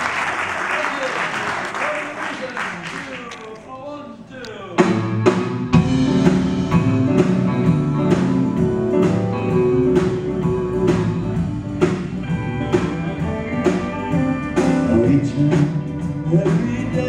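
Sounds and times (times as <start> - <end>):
bass: 4.7 - 17.0
steady drum beat: 4.7 - 17.0
piano: 4.8 - 17.0
electric guitar: 4.9 - 17.0.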